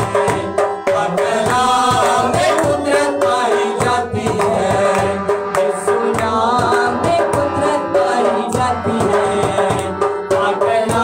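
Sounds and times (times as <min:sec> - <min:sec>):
harmonium chords: 0:00.0 - 0:11.0
men singing: 0:00.0 - 0:11.0.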